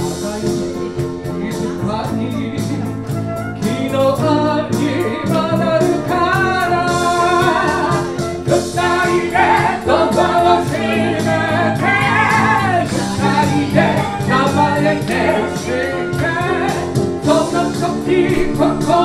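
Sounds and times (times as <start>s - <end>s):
flute: 2.5s - 10.3s, 11.6s - 19.0s
woman singing into microphone: 4.4s - 19.0s.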